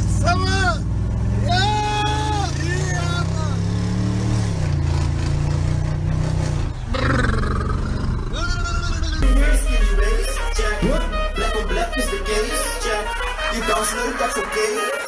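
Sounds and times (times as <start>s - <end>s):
car engine revving: 0.0s - 14.2s
man shouting: 0.2s - 0.8s, 1.4s - 3.6s.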